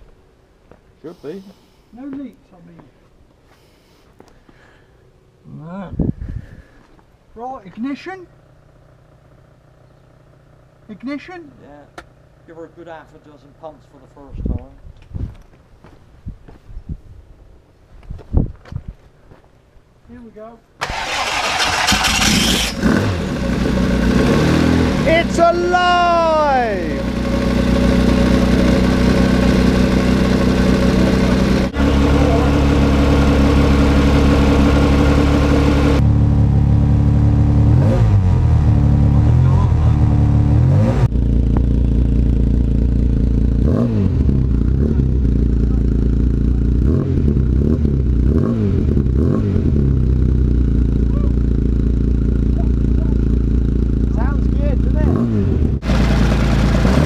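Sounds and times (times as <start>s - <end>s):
race engine revving and idling: 20.8s - 57.0s.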